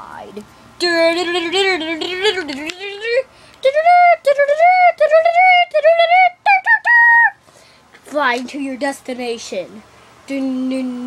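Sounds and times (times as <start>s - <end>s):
child singing wordless tune: 0.8s - 7.4s, 8.1s - 11.0s.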